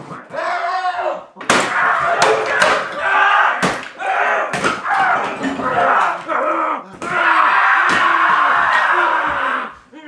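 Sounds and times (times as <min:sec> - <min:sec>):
wooden chair smashing: 0:01.4 - 0:03.0, 0:03.6 - 0:06.3.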